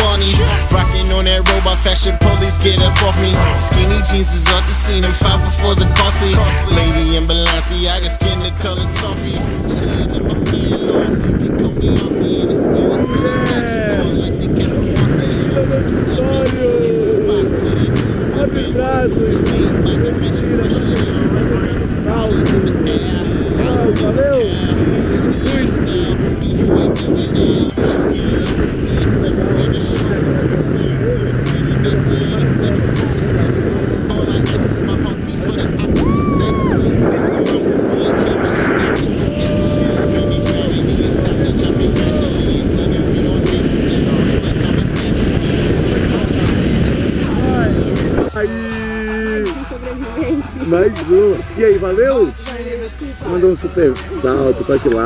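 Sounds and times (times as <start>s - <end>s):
pop music: 0.0s - 55.0s
wind noise on microphone: 0.0s - 55.0s.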